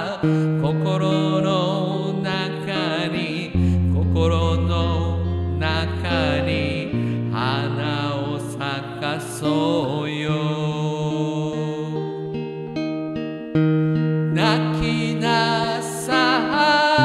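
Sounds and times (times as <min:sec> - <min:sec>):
person singing slow melody: 0:00.0 - 0:13.2, 0:13.8 - 0:17.0
acoustic guitar: 0:00.0 - 0:17.0.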